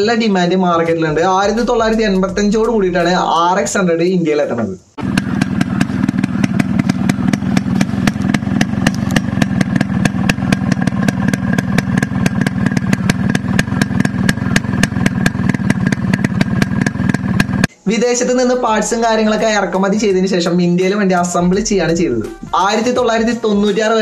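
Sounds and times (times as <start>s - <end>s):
exhaust popping: 0.0s - 17.8s
motorcycle engine idling: 5.0s - 17.7s.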